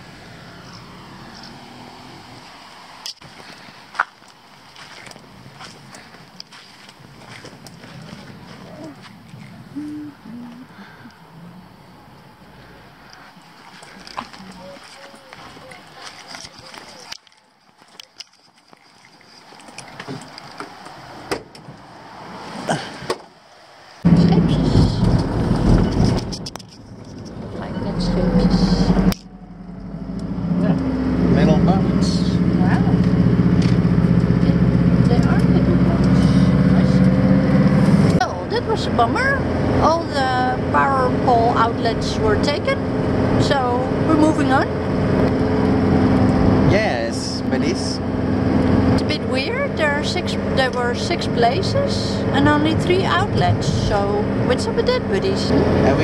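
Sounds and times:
van engine starting and running: 24.0s - 56.0s.

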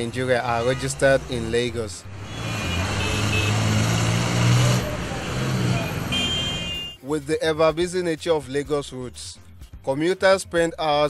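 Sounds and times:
street noise hum: 0.0s - 7.0s
vehicle engines running: 0.0s - 7.0s.

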